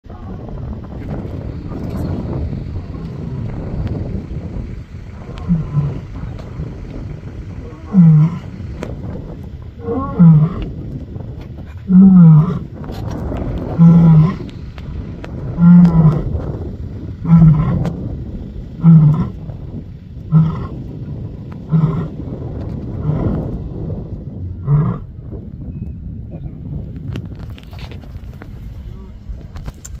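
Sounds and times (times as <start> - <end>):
lioness roaring: 5.1 - 11.0, 11.7 - 18.0, 18.7 - 19.6, 20.2 - 23.8, 24.4 - 25.2.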